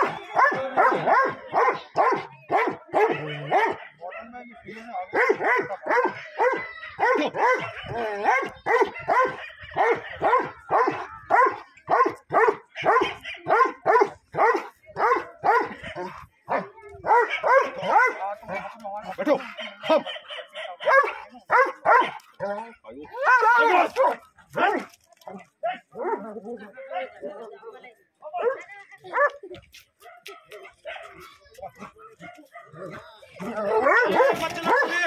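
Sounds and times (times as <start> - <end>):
dog barking: 0.0 - 22.3, 26.0 - 26.4, 28.4 - 29.4, 30.0 - 31.4, 32.2 - 35.0.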